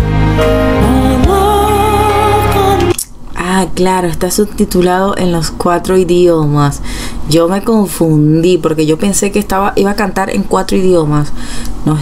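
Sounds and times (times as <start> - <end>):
instrumental backing: 0.0 - 3.0
woman speaking: 3.4 - 12.0.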